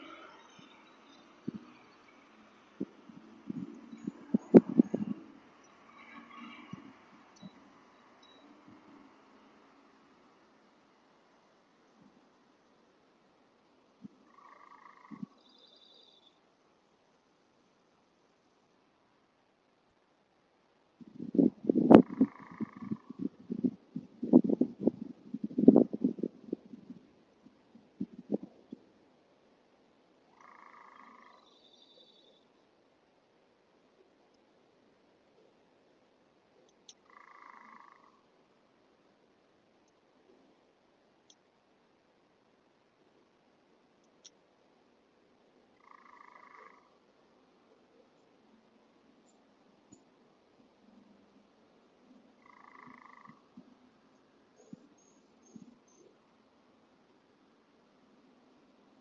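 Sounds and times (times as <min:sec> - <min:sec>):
low croak-like animal calls: 0:00.0 - 0:02.2, 0:02.8 - 0:09.2, 0:14.0 - 0:16.2, 0:21.3 - 0:26.3, 0:30.3 - 0:32.5, 0:36.9 - 0:38.3, 0:45.8 - 0:47.0, 0:52.3 - 0:53.7
faint outdoor hiss: 0:00.0 - 0:59.0
soft clicks: 0:44.0 - 0:44.4.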